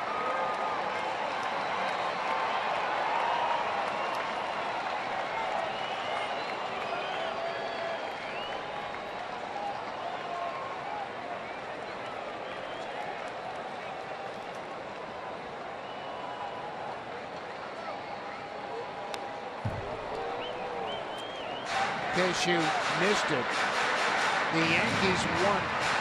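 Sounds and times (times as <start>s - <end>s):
crowd murmuring: 24.2s - 26.0s.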